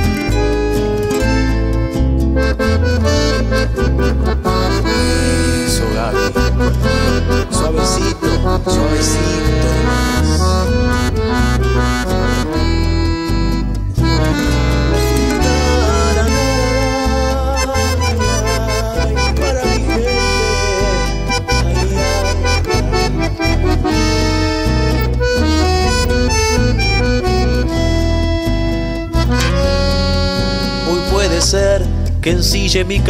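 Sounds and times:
accordion melody: 0.0 - 33.0
bass line: 0.0 - 33.0
guitar: 0.0 - 33.0.

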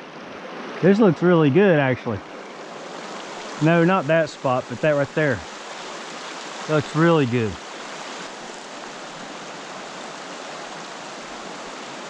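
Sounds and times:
creek running over rocks: 0.0 - 12.0.

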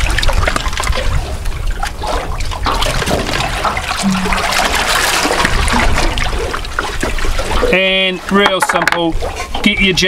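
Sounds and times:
wind rumble on microphone: 0.0 - 7.8
small water splashes: 0.0 - 10.0
water lapping against boat hull: 0.0 - 10.0.

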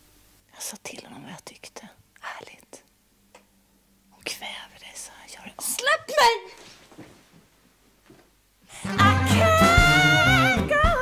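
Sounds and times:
person whispering: 0.5 - 2.9, 4.2 - 5.9.

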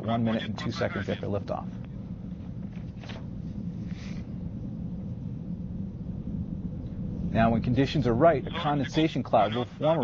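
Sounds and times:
distant rocket engine rumble: 0.0 - 10.0.

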